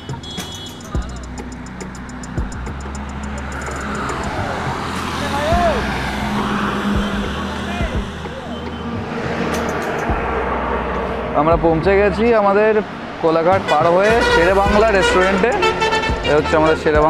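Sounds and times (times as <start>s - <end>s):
highway traffic passing: 0.0s - 17.0s.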